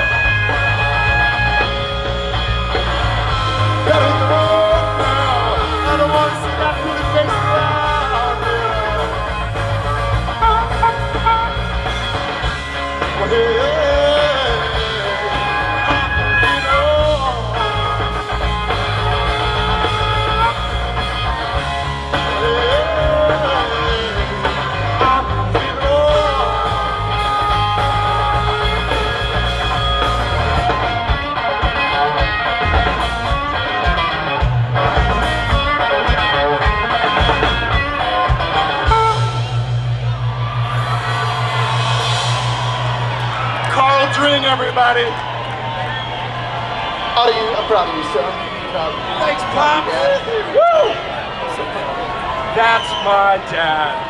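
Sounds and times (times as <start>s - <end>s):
harmonica: 0.0s - 40.2s
electric bass: 0.0s - 47.1s
drums: 0.0s - 54.0s
electric guitar: 0.0s - 54.0s.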